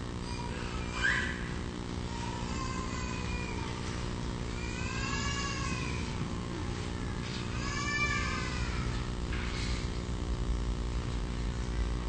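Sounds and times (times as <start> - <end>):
steady low hum: 0.0 - 12.0
high-pitched voice-like cry: 0.3 - 3.8, 7.0 - 9.0.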